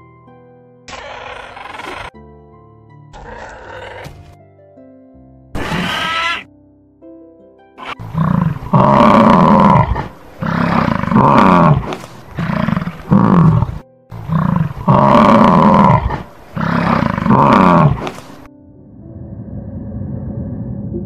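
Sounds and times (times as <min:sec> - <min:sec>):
lion roaring: 0:00.9 - 0:02.1, 0:03.1 - 0:04.2, 0:05.6 - 0:06.5, 0:07.8 - 0:18.5.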